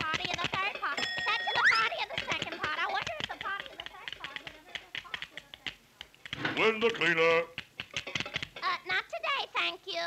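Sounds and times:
cartoon typewriter clattering: 0:00.0 - 0:08.6
bell ding: 0:01.0 - 0:01.9.

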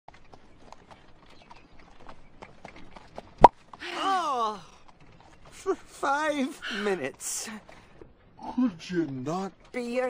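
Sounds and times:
horse hooves clip-clopping: 0:00.1 - 0:10.0.

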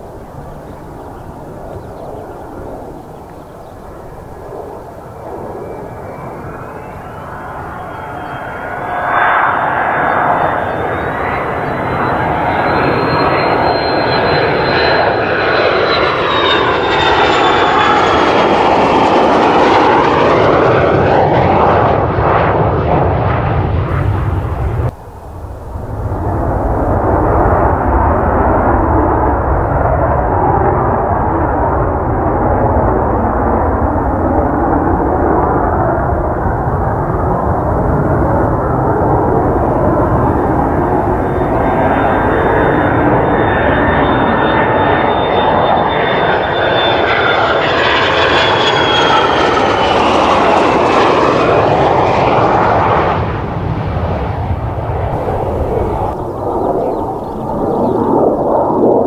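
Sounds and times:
high jet whine falling in pitch: 0:00.0 - 0:59.0
jet engines roaring: 0:00.0 - 0:59.0.

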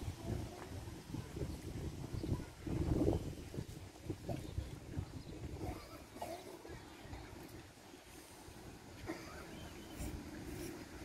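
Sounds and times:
wind rumble on microphone: 0:00.0 - 0:09.0
faint crowd murmur: 0:00.0 - 0:11.0.

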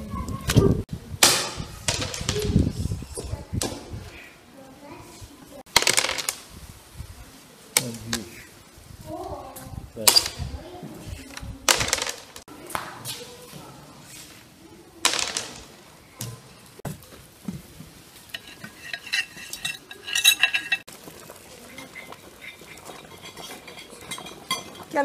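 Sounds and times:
checkers clacking on wooden board: 0:05.7 - 0:06.4, 0:11.7 - 0:12.5, 0:15.1 - 0:15.7
metal spoon scraping porcelain plates: 0:18.3 - 0:20.9, 0:21.6 - 0:25.0.

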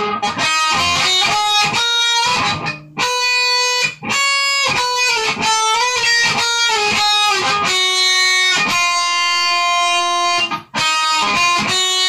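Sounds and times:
guitar picked single notes: 0:00.0 - 0:12.0.

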